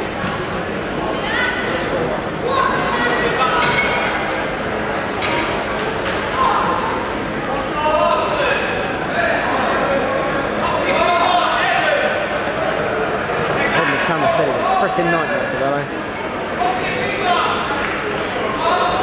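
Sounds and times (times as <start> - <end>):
voices talking and calling out: 0.0 - 19.0.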